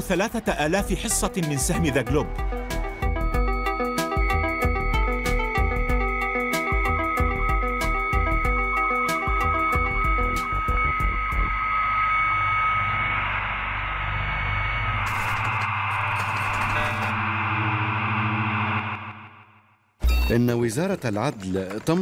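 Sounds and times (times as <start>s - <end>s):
electronic title music: 0.4s - 20.4s
crackle burst: 11.3s - 19.6s.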